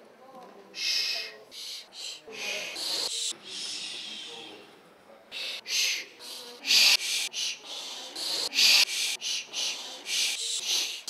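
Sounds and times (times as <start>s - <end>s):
whispered shushing: 0.7s - 11.0s.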